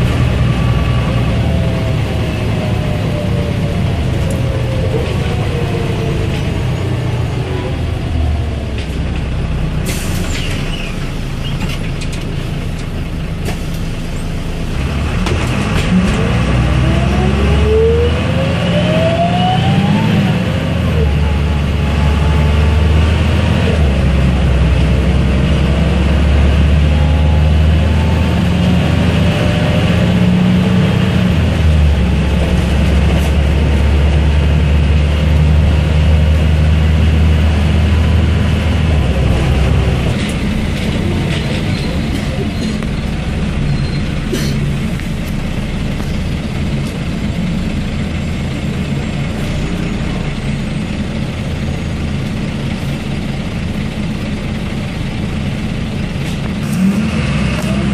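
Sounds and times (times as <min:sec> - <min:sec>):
bus diesel engine drone: 0:00.0 - 0:57.9.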